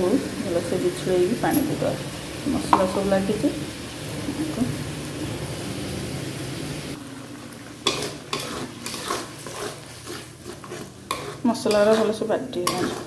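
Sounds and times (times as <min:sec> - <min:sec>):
hot oil sizzling: 0:00.0 - 0:13.0
spoon scraping and knocking on steel: 0:07.9 - 0:13.0.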